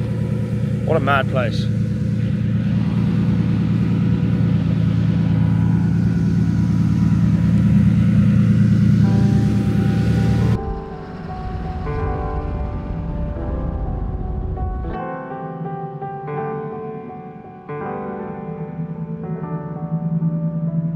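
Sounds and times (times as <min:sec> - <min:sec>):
car engines idling: 0:00.0 - 0:15.0
music: 0:02.2 - 0:20.9.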